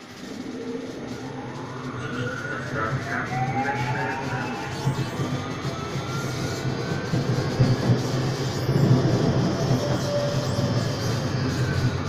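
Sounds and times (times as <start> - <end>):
faint rising drive whine: 0.0 - 7.1
tram rumbling on rails: 0.0 - 12.0.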